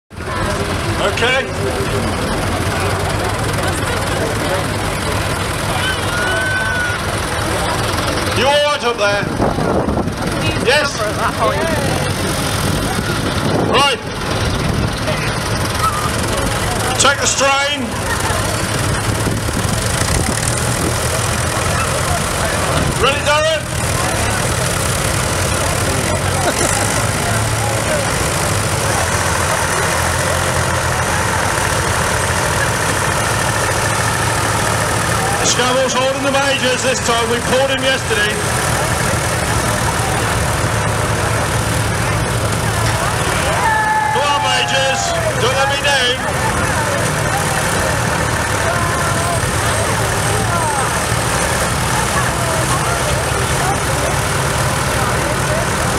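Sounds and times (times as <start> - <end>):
tractor and truck engines running: 0.1 - 55.9.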